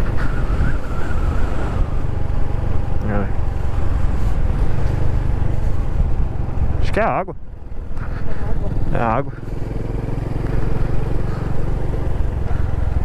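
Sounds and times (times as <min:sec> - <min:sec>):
wind rushing over microphone: 0:00.0 - 0:06.8
motorcycle engine running: 0:00.0 - 0:13.0.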